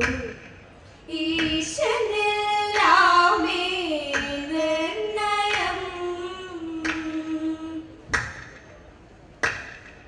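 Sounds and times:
group hand claps: 9.4s - 9.9s.

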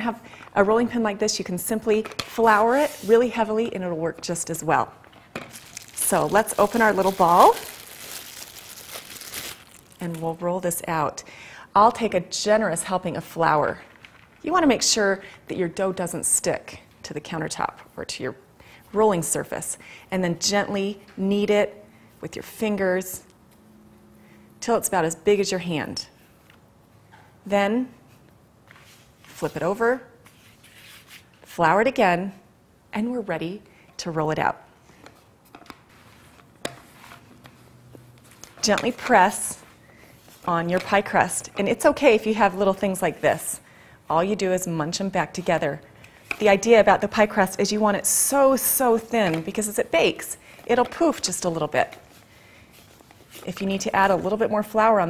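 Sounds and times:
plastic bag crinkling: 5.5s - 10.4s.

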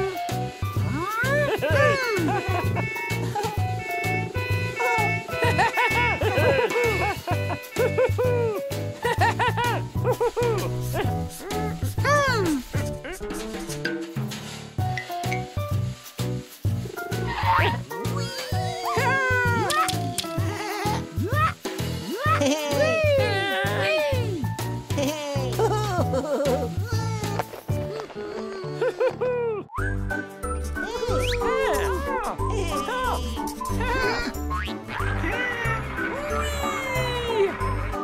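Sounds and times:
bouncy cartoon music: 0.0s - 38.0s
sliding cartoon squeaks: 30.6s - 34.4s.

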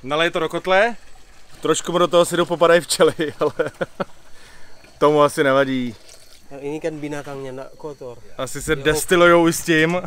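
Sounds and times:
liquid pouring into plastic funnel: 0.0s - 7.6s.

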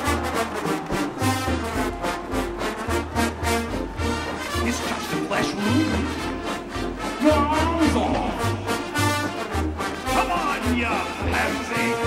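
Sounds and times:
brass and sousaphones: 0.0s - 12.0s.

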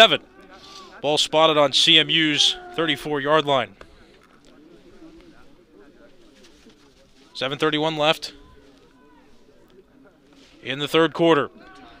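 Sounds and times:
murmur of distant crowd voices: 0.0s - 12.0s.

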